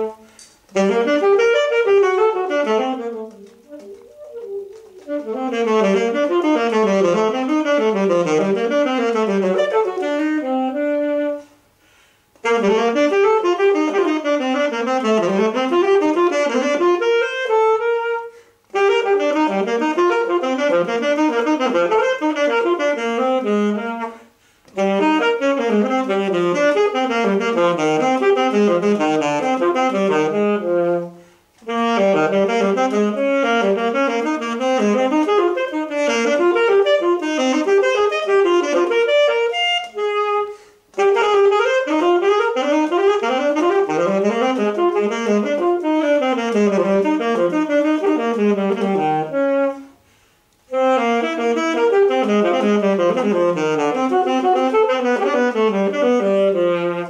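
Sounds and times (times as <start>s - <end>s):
alto saxophone playing fast runs: 0.0s - 57.0s.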